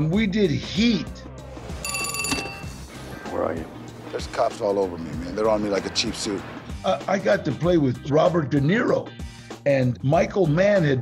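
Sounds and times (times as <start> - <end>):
background film music: 0.0 - 11.0
telephone ringing: 1.8 - 2.9.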